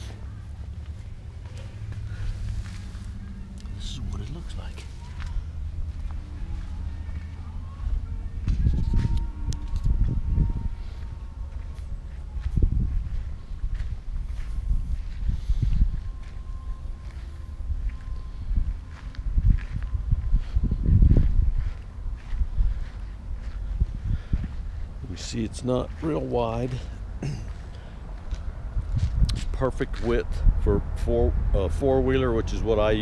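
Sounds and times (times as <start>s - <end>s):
footsteps on concrete and grass: 0.0s - 10.2s, 10.8s - 30.2s
low rumbling: 0.0s - 33.0s.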